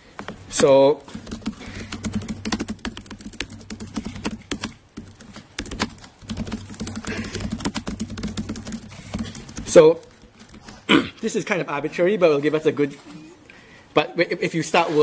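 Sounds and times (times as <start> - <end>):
fast typing on laptop keyboard: 1.0 - 10.9.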